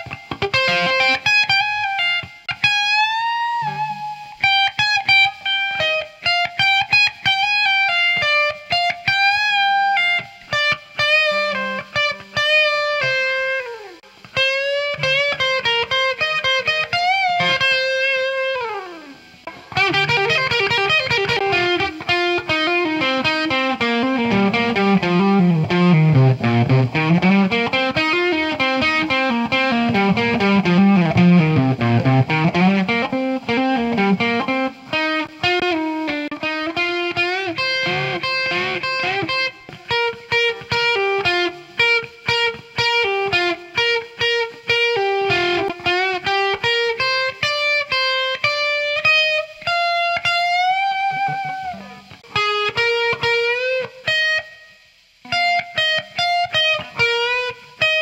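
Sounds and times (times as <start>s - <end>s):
electric guitar blues-rock solo: 0.0s - 58.0s.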